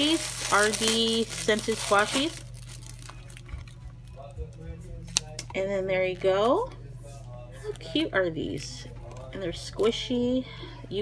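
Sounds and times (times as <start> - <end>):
plastic wrapper handling: 0.0 - 4.0
steady low hum: 0.0 - 11.0.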